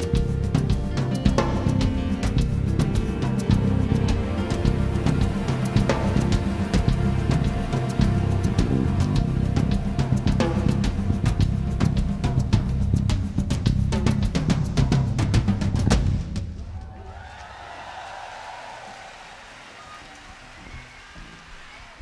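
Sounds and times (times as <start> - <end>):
live rock band: 0.0 - 14.5
rapid drum-kit strikes: 0.0 - 17.5
faint crowd noise: 16.4 - 22.0.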